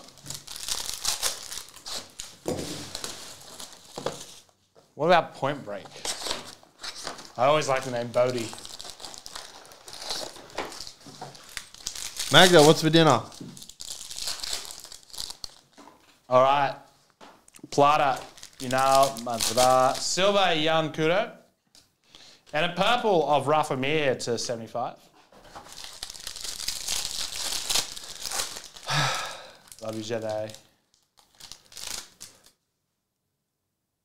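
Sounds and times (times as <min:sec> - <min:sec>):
plastic shrink wrap crinkling: 0:00.0 - 0:04.6, 0:05.8 - 0:16.3, 0:17.1 - 0:20.4, 0:25.4 - 0:32.6.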